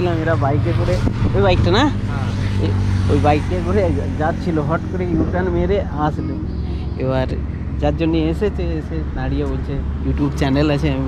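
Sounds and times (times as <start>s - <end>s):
low engine hum: 0.0s - 11.0s
men talking: 0.0s - 11.0s.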